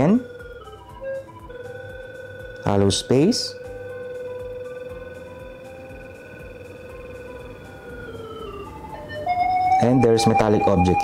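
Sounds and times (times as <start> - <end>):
electronic signal tone: 0.0 - 11.0
louder higher electronic tone: 0.0 - 11.0.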